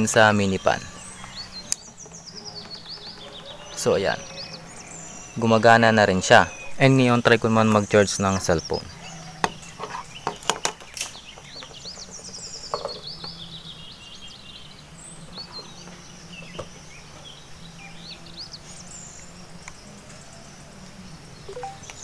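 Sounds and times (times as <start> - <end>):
birds chirping: 0.0 - 22.0.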